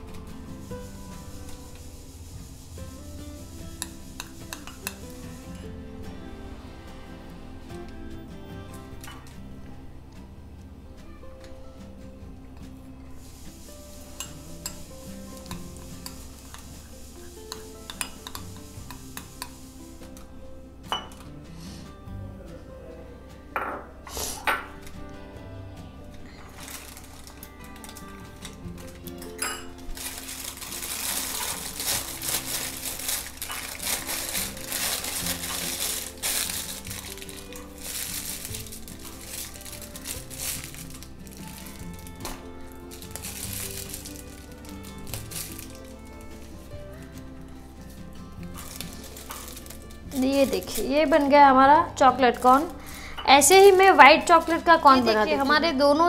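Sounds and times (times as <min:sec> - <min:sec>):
background music: 0:00.0 - 0:56.0
plastic crinkling: 0:26.2 - 0:51.3, 0:52.1 - 0:55.4.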